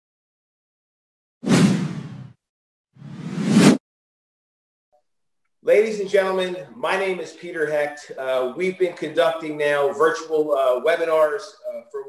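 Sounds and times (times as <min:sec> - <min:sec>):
whoosh sound effects: 0:03.0 - 0:03.8.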